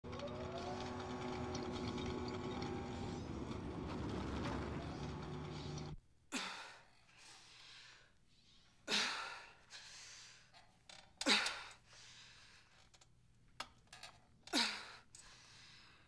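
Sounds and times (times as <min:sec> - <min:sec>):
dense drone with held tones: 0:00.0 - 0:06.0.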